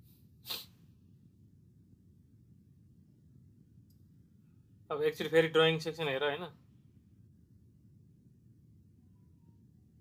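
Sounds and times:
faint low room hum: 0.0s - 10.0s
person sneezing: 0.5s - 0.8s.

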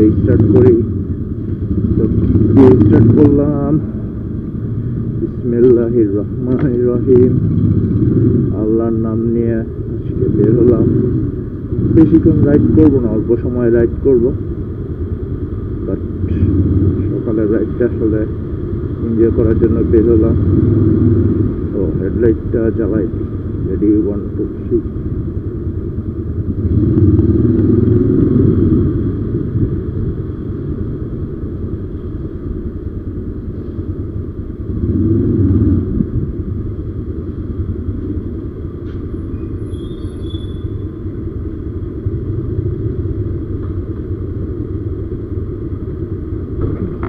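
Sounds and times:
motorcycle engine running: 0.0s - 47.0s.

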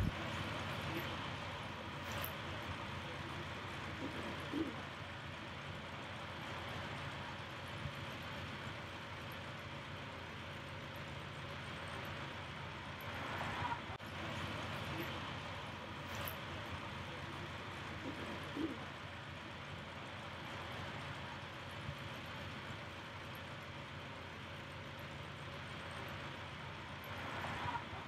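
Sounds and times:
distant voices: 0.0s - 28.0s.

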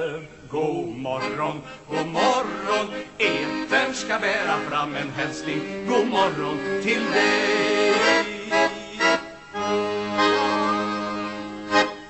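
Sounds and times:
accordion chords: 0.0s - 12.0s.

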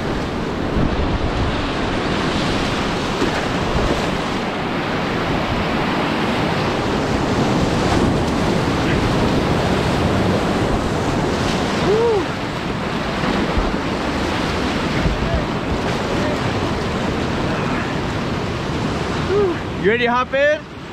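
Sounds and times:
wind buffeting microphone: 0.0s - 19.8s
whitewater rapids rushing: 0.0s - 20.6s.

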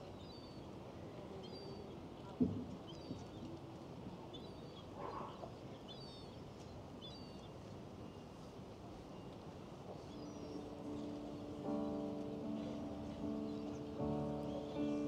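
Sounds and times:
hushed crowd ambience: 0.7s - 15.0s.

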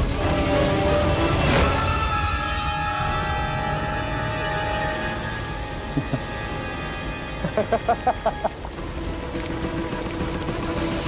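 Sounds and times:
dramatic music with held tones: 0.0s - 11.0s.

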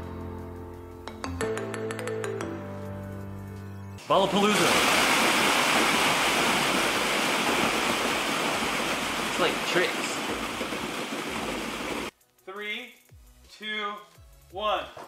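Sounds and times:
plastic balls pouring onto concrete: 4.0s - 12.1s.

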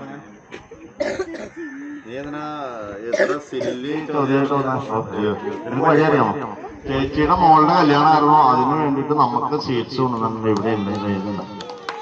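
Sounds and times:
person coughing: 1.0s - 1.6s, 3.1s - 3.8s.

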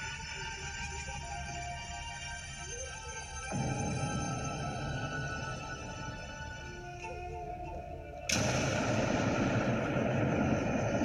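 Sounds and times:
quiet music: 0.0s - 11.0s
loud boom impact: 8.4s - 11.0s.

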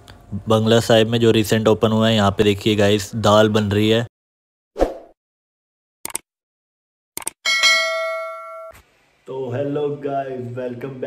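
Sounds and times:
bright bell ding: 7.4s - 8.8s.

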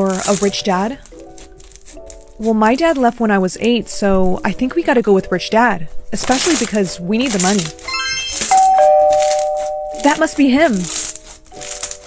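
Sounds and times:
short bright chime: 7.9s - 10.2s
two-tone doorbell chime: 7.9s - 10.4s.

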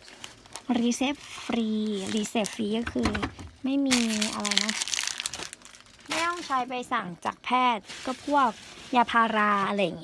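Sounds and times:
crinkling handling noise: 0.0s - 10.0s.

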